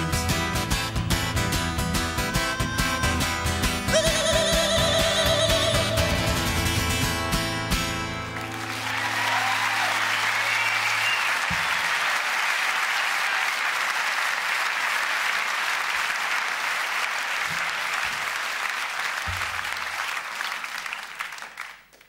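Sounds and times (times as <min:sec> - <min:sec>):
audience applauding: 0:08.1 - 0:22.0.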